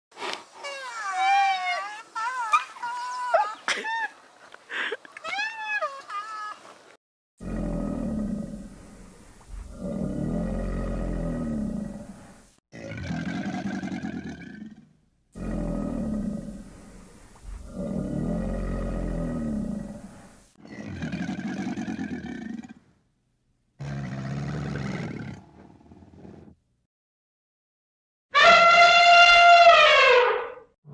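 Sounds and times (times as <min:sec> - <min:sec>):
crocodile growling: 0:07.4 - 0:14.8, 0:15.4 - 0:22.8.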